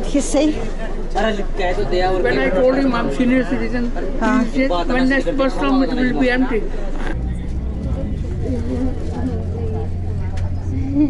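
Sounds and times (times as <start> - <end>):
faint passenger voices: 0.0 - 11.0
bus engine droning: 2.6 - 11.0.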